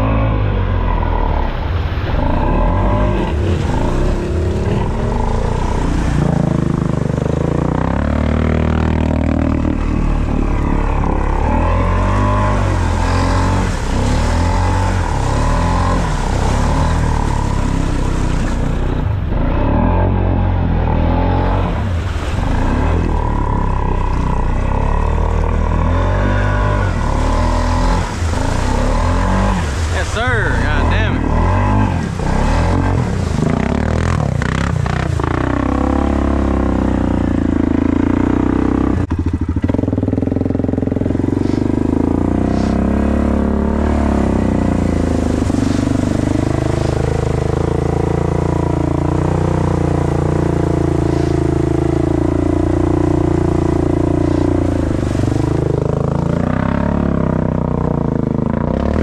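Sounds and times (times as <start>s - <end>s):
atv engine revving in mud: 0.0s - 59.0s
person talking: 29.9s - 31.4s.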